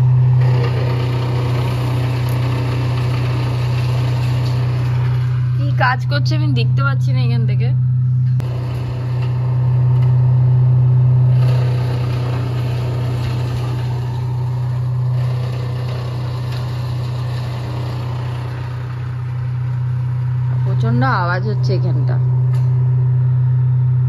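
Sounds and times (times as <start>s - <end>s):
large engine idling: 0.0s - 24.0s.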